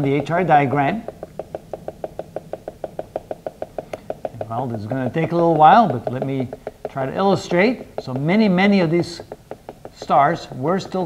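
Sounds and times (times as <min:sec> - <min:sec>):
marker tapping on whiteboard: 0:00.0 - 0:11.0.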